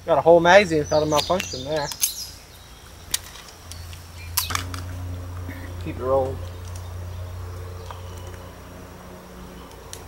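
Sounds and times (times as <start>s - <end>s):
steady low hum: 4.0s - 10.0s.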